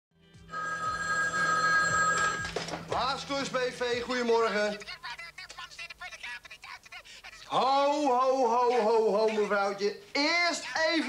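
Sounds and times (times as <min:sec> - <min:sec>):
telephone ringing: 0:00.5 - 0:03.0.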